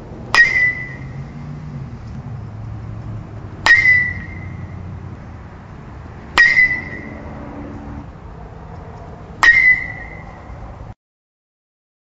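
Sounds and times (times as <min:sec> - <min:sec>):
metal bat striking ball: 0:00.3 - 0:01.3, 0:03.6 - 0:04.8, 0:06.3 - 0:08.0, 0:09.4 - 0:10.5.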